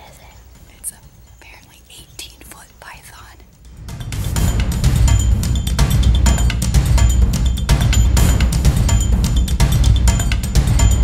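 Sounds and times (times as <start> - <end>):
soft whispering: 0.0 - 3.6.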